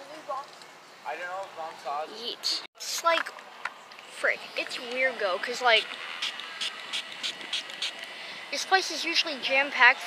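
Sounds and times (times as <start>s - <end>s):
fan motor whirring: 5.7s - 9.9s.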